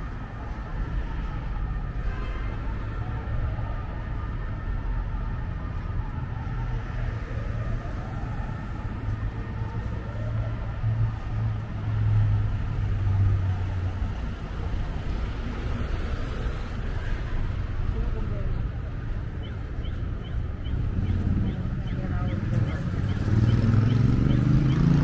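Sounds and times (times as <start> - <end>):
traffic rumble: 0.0 - 25.0
car passing close by: 22.5 - 25.0.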